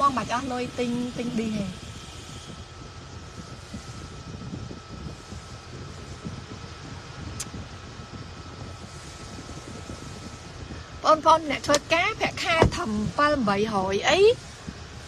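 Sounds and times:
car air-conditioning blower: 0.0 - 15.0
faint steady whine: 0.0 - 15.0.

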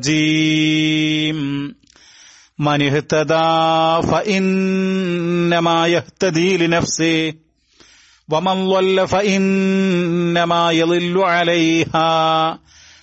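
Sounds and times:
man chanting recitation: 0.0 - 1.9, 2.6 - 7.5, 8.3 - 12.7.

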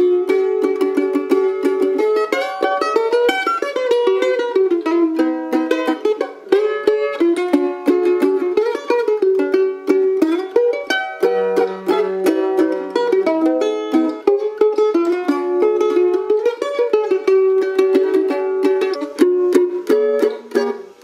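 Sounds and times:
mandolin picked notes: 0.0 - 21.0.

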